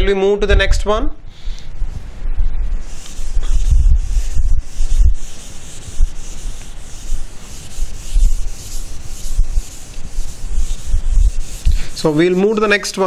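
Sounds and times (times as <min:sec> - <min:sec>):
duster rubbing on whiteboard: 0:02.8 - 0:12.9.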